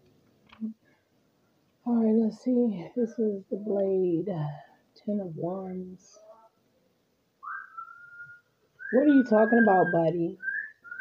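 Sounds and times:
bird whistling rising note: 7.4 - 11.0.

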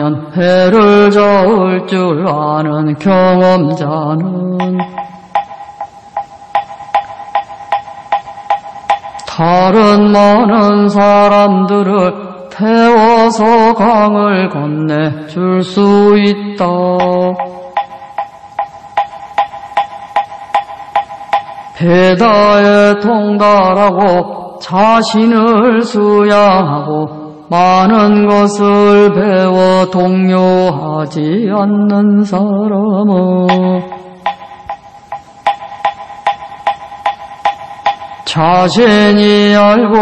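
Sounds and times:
wooden fish knocking steady beat: 0.8 - 14.2, 15.2 - 26.0, 33.4 - 40.0.

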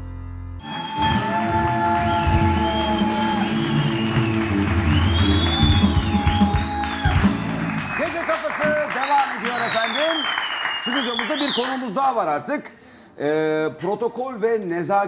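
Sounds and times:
live band music: 0.6 - 8.5
audience applause: 0.6 - 12.1.

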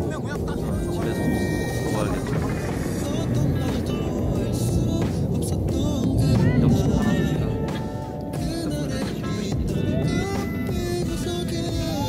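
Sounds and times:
man talking: 0.0 - 4.2
aircraft roaring overhead: 0.0 - 12.0
background music: 0.0 - 12.0.

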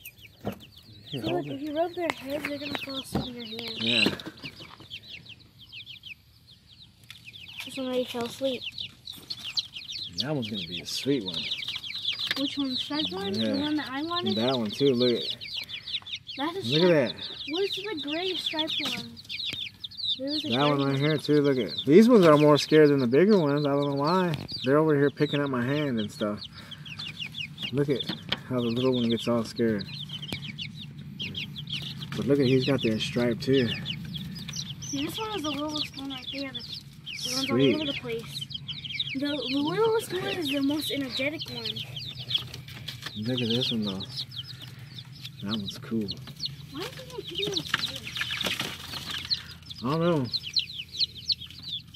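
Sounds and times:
baby chicks peeping: 0.0 - 51.9
low steady hum: 0.0 - 51.9.

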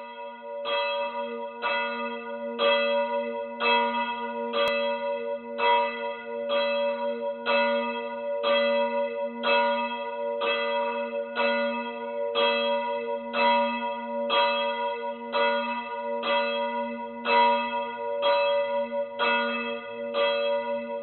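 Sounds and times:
church bell tolling: 0.0 - 21.0.

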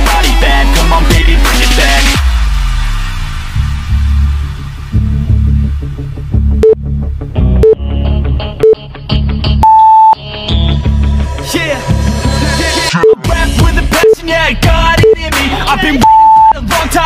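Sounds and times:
hip-hop music with bass beat: 0.0 - 9.6, 10.2 - 17.0
interval timer beeps: 6.6 - 6.8, 9.6 - 10.2, 13.0 - 13.2, 15.0 - 15.2, 16.0 - 16.5.

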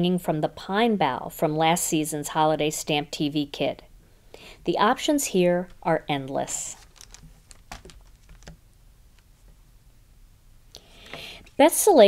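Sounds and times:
plastic sleeve set on tabletop: 6.6 - 8.6.

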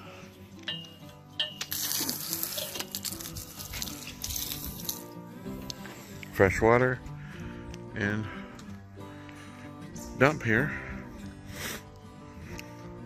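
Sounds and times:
light background music: 0.0 - 13.0.

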